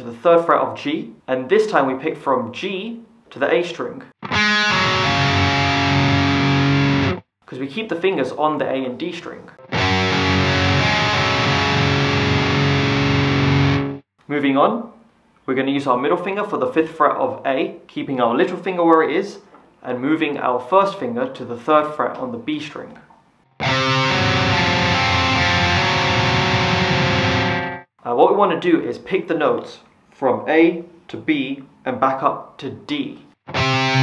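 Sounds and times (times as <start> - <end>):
distorted electric guitar chord: 4.3 - 7.2, 9.6 - 14.0, 23.6 - 27.9, 33.5 - 34.0.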